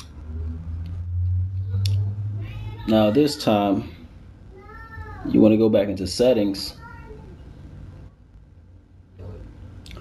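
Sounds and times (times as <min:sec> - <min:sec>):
low background rumble: 0:00.0 - 0:03.1.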